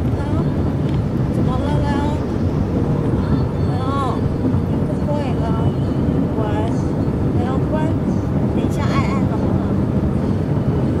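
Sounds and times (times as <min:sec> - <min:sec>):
road and engine noise in cabin: 0:00.0 - 0:11.0.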